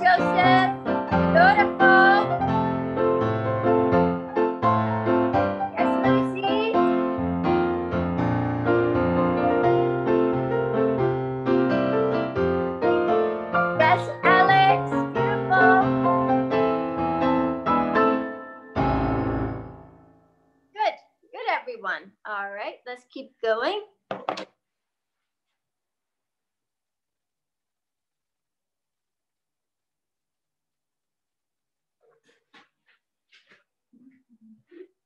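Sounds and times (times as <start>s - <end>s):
piano playing quick notes and chords: 0.0s - 20.1s.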